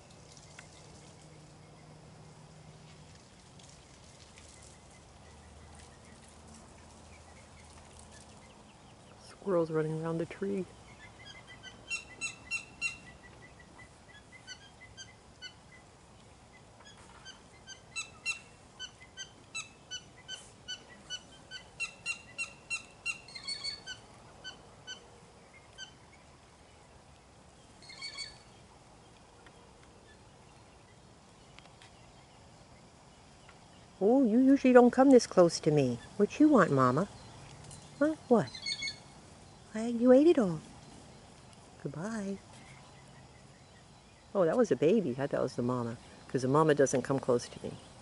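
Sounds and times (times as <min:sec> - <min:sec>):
animal chirping: 0:10.9 - 0:15.6, 0:16.8 - 0:25.1, 0:27.8 - 0:28.5, 0:38.0 - 0:39.1.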